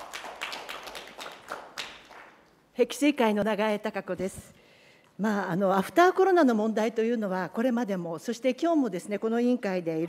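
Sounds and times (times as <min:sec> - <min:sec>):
people clapping: 0:00.0 - 0:02.7.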